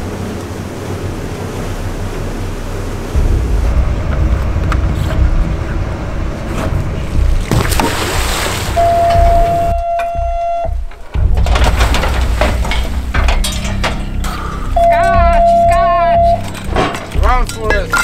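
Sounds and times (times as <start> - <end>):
boat engine and water rumble: 0.0 - 18.0
background music: 0.1 - 18.0
steady held tone: 8.8 - 10.9, 14.6 - 16.5
man shouting: 14.8 - 16.4.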